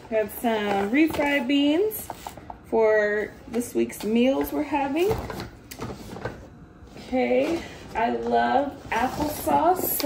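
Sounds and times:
groceries knocking and rustling: 0.0 - 2.6, 3.5 - 10.0.

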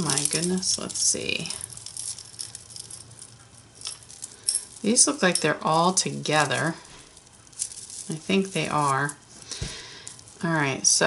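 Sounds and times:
beads clicking and rattling: 0.0 - 10.8.

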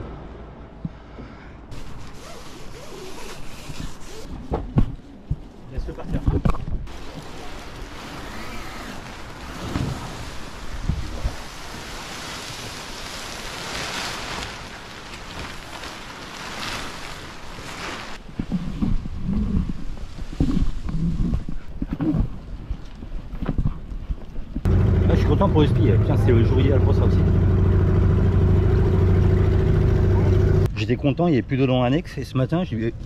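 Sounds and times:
sail cloth rustling and flapping: 1.8 - 5.7, 6.4 - 24.6.

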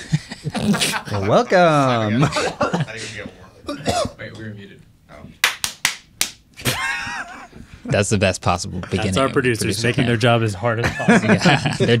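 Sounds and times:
hand claps: 5.4 - 6.4.

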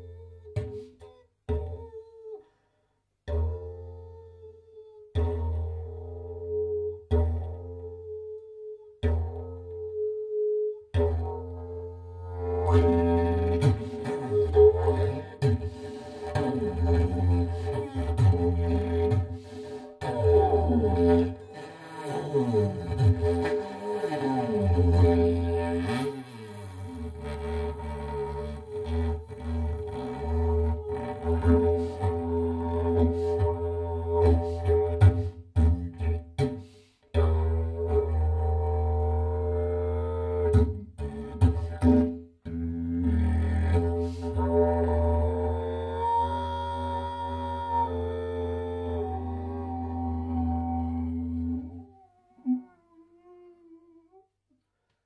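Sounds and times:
didgeridoo drone: 26.8 - 36.2, 37.2 - 53.5.

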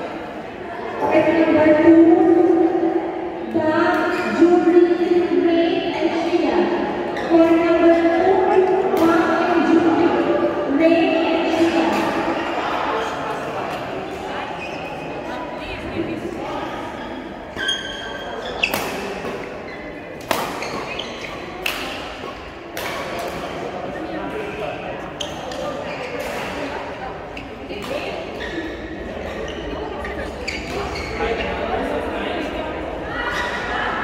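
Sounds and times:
murmur of voices: 0.0 - 34.0
shoes squeaking on court: 14.5 - 15.2, 17.0 - 21.6, 25.2 - 31.6
rackets hitting shuttlecock: 18.6 - 23.8.

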